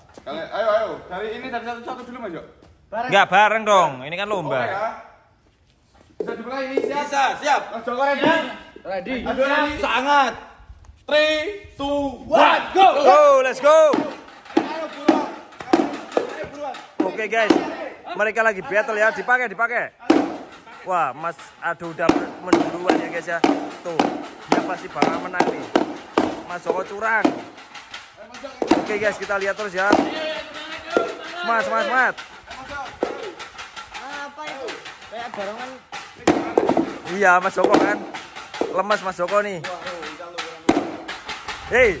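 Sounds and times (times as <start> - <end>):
sharp clacks: 20.1 - 42.0
excited voices: 28.2 - 33.4
onlookers calling out exclamations: 29.9 - 32.2.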